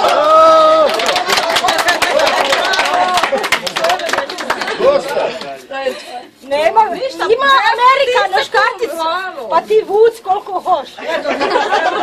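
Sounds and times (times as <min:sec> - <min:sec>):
loud long held shout: 0:00.0 - 0:03.4
people talking and laughing: 0:00.0 - 0:12.0.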